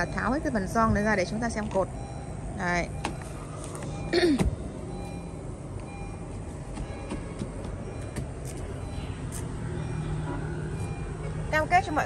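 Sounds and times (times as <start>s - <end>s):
vehicle engine humming: 0.0s - 12.0s.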